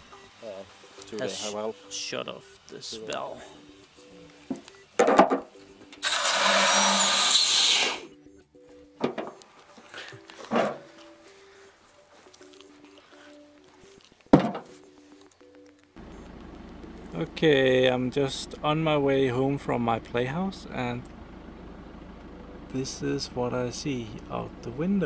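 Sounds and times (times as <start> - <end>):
soft background music: 0.0 - 6.7, 7.7 - 20.9, 22.3 - 25.0.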